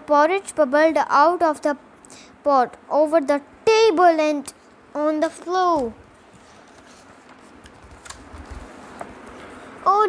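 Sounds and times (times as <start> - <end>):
paper book rustling: 5.7 - 9.6.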